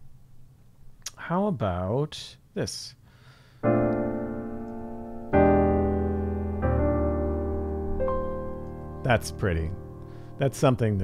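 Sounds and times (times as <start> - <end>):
piano chord ringing: 3.6 - 11.0.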